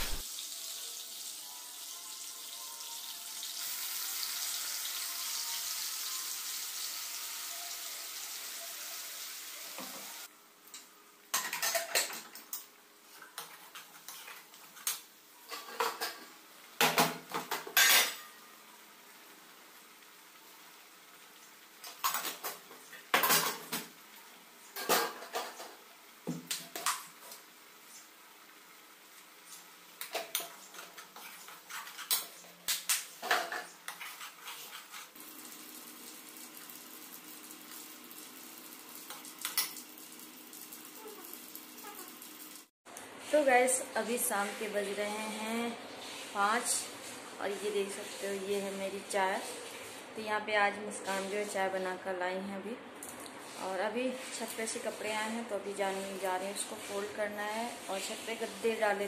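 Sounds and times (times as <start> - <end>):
gravy sizzling in a pan: 0.0 - 42.7, 53.4 - 59.0.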